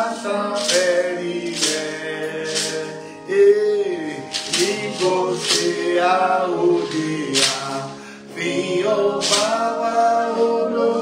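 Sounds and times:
man singing a hymn: 0.0 - 11.0.

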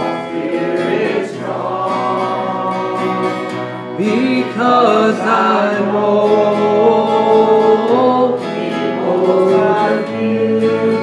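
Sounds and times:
acoustic guitar: 0.0 - 11.0
person singing gospel song: 0.0 - 11.0.

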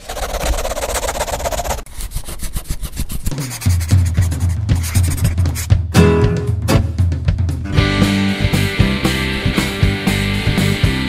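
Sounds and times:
scratchy rasping noise: 0.0 - 5.8.

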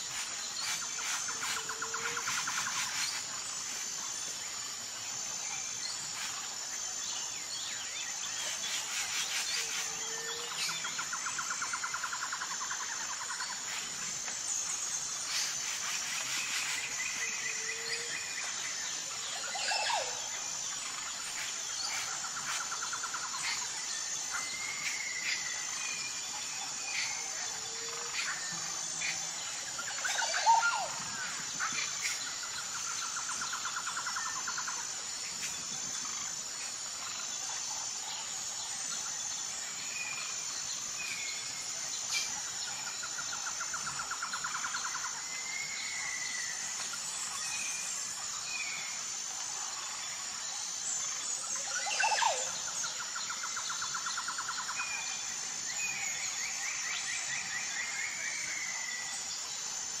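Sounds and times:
high-pitched insect drone: 0.0 - 60.0.

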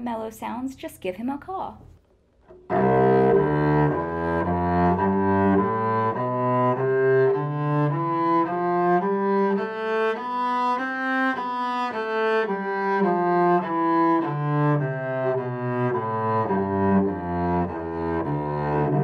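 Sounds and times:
bowed cello melody: 2.5 - 19.0.

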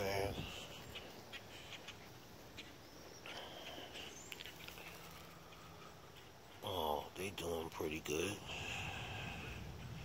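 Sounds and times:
faint garden ambience: 0.0 - 10.0.

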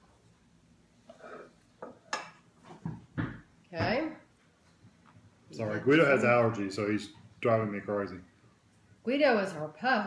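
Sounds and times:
knife scraping a plate: 1.1 - 2.4.

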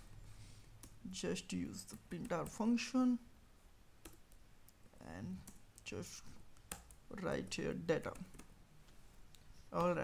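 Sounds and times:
faint computer keyboard keystrokes: 4.0 - 4.8, 6.5 - 7.0.

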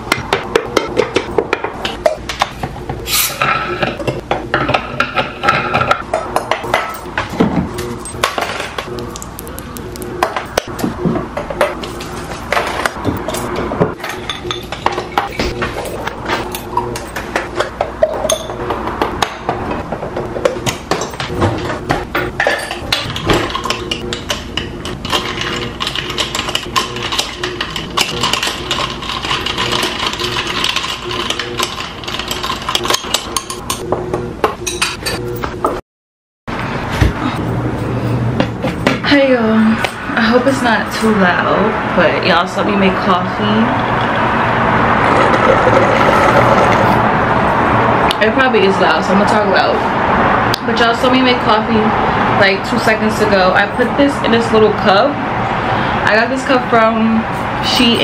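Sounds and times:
glassware and utensils clinking: 11.6 - 18.6, 20.9 - 33.8
espresso maker brewing: 44.9 - 47.1.

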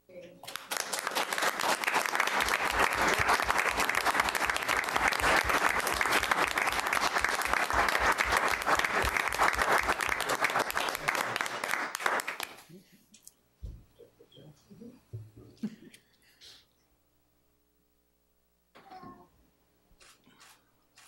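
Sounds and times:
audience applauding: 0.4 - 12.7.

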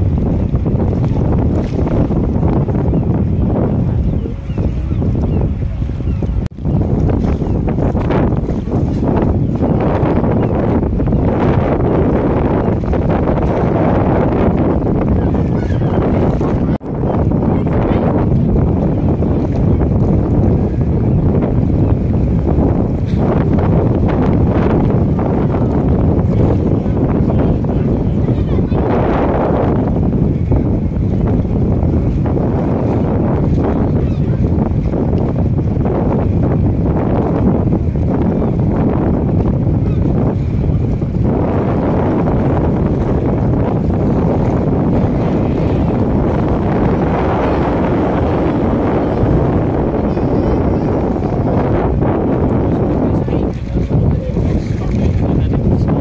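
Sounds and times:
boat and tractor engines running: 0.0 - 56.0
wind buffeting a microphone: 0.0 - 56.0.

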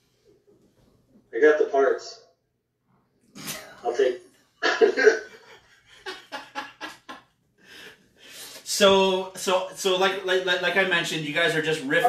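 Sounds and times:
man laughing hard: 4.6 - 7.1.

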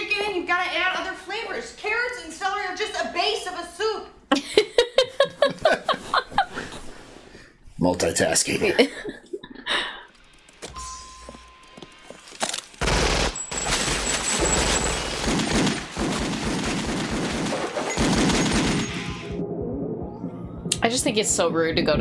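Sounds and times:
rapid gunfire: 12.8 - 19.4.

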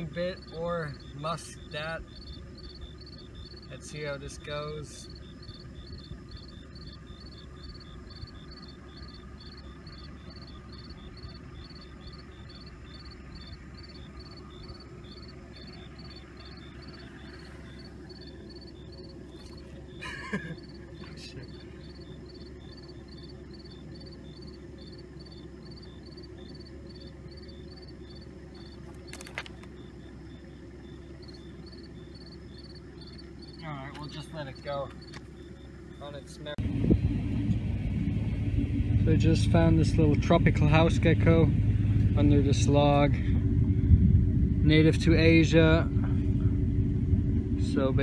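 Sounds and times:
insects chirping: 0.0 - 36.6
low steady rumble: 0.0 - 48.0.

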